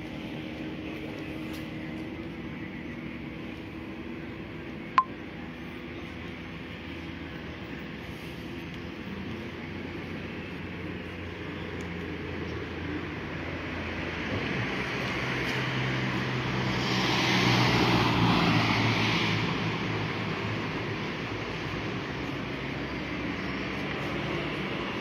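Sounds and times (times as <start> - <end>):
low hum of traffic: 0.0 - 25.0.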